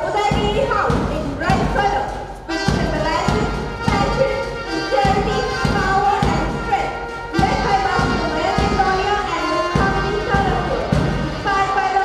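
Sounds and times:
heavy drum beats: 0:00.0 - 0:12.0
march music melody: 0:00.0 - 0:12.0.

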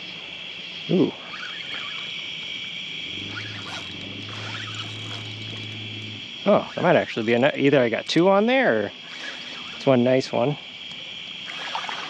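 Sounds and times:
chorus of night insects: 0:00.0 - 0:12.0
low steady hum: 0:00.2 - 0:12.0.

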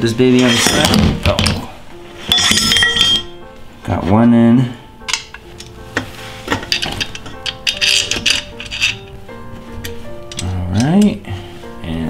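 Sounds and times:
background music: 0:00.0 - 0:12.0
metal parts clicking and clinking: 0:02.3 - 0:03.3, 0:06.5 - 0:09.0, 0:09.8 - 0:11.1.

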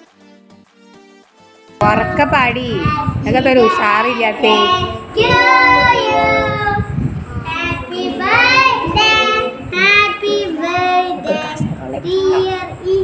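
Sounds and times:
hand clapping: 0:00.0 - 0:01.6
children singing: 0:03.6 - 0:11.6.

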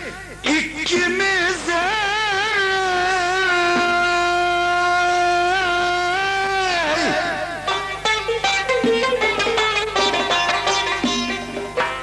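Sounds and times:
man singing long high note: 0:00.0 - 0:07.8.

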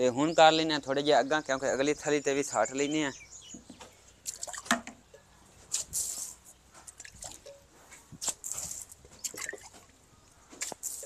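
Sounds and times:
water splashing onto earth floor: 0:04.2 - 0:05.0, 0:05.6 - 0:10.0, 0:10.6 - 0:11.0.

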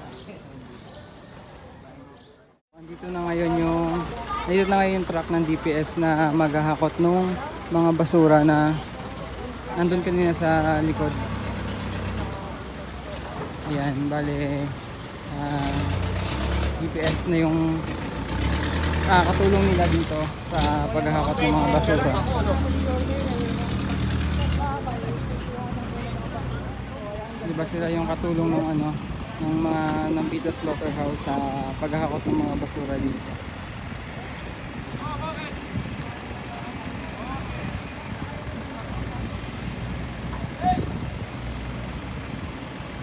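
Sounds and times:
truck engine humming: 0:02.8 - 0:43.0.

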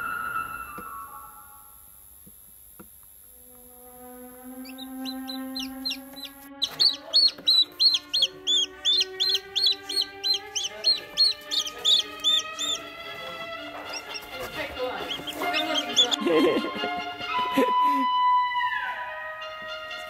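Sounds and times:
background music with held notes: 0:03.5 - 0:20.0
baby chick peeping: 0:04.4 - 0:18.0.

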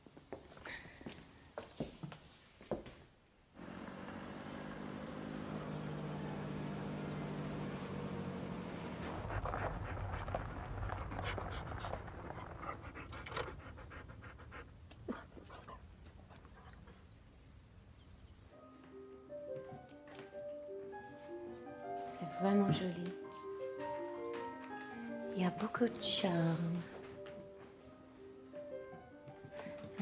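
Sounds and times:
van engine running: 0:03.6 - 0:11.6
dog panting: 0:09.0 - 0:17.0.

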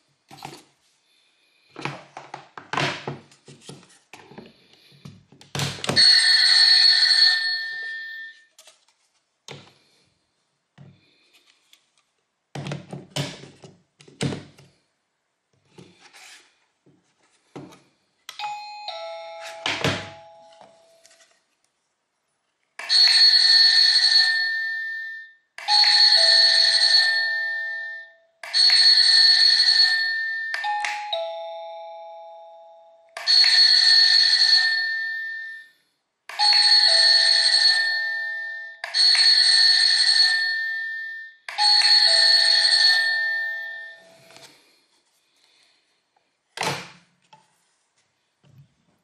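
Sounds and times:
doorbell chiming: 0:06.0 - 0:08.4, 0:18.4 - 0:20.9, 0:22.8 - 0:44.3
doorbell chime ding-dong: 0:18.4 - 0:20.8, 0:29.8 - 0:33.3.

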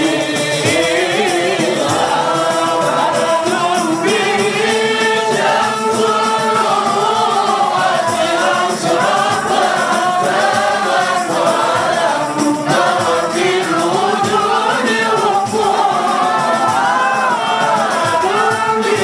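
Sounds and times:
men singing unaccompanied: 0:00.0 - 0:19.0.

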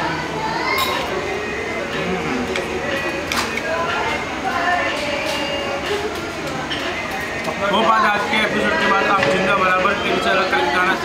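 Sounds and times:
indistinct chatter of diners: 0:00.0 - 0:11.0.

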